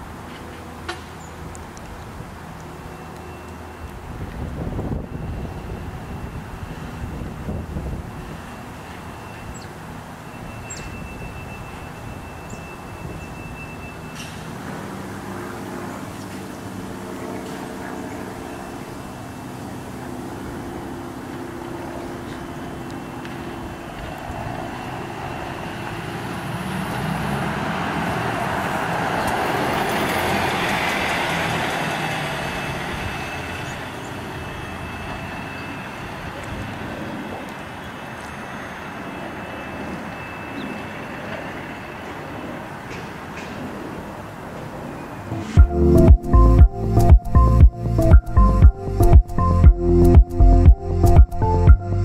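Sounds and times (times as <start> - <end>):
bus pulling away and driving past: 0.0 - 52.0.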